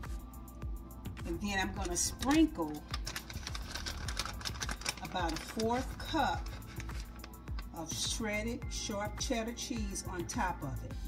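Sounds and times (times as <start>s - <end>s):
plastic bag crinkling: 1.8s - 7.7s.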